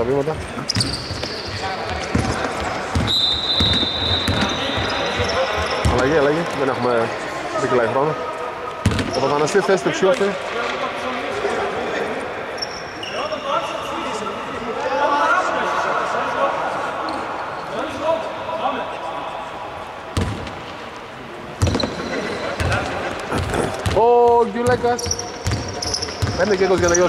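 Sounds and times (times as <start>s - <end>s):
players' voices: 0.0s - 27.0s
basketball bouncing on hardwood: 1.9s - 4.9s.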